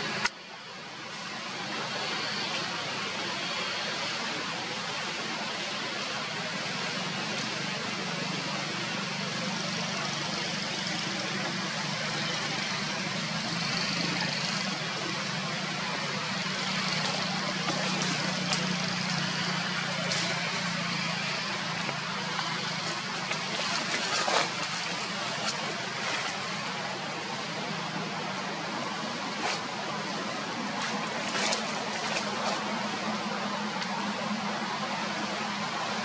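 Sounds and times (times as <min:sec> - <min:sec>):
distant road traffic: 0:00.0 - 0:36.0.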